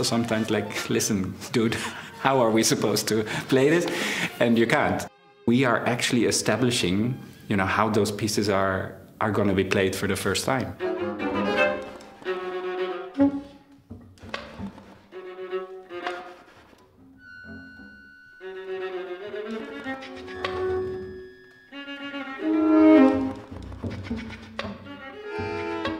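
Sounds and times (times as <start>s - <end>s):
contemporary chamber music on bowed strings: 0.0s - 7.8s, 10.5s - 25.9s.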